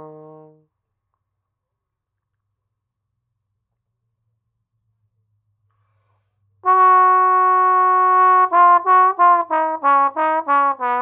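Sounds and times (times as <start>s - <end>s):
solo trombone: 0.0s - 0.7s, 6.6s - 11.0s.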